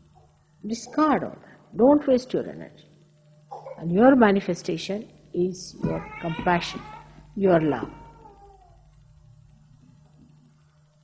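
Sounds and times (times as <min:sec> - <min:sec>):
tape recording hum: 0:00.0 - 0:11.0.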